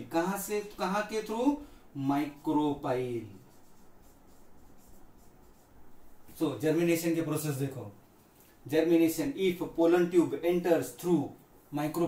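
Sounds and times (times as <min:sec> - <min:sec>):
scratching strokes of writing: 0:02.2 - 0:06.3.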